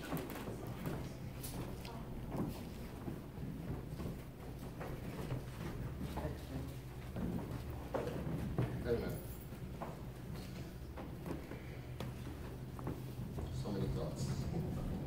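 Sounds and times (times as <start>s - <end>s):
faint knocks and rustles: 0.0s - 15.0s
steady low hum: 0.0s - 15.0s.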